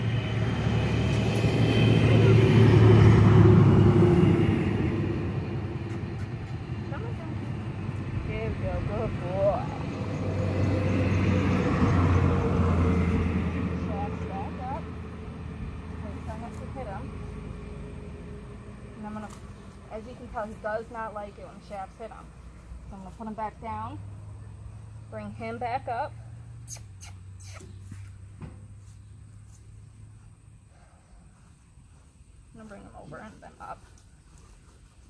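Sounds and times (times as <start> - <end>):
motor vehicles passing: 0.0 - 35.0.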